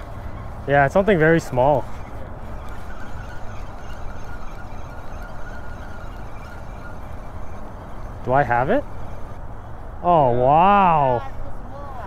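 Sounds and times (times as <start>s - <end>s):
low city rumble: 0.0s - 12.0s.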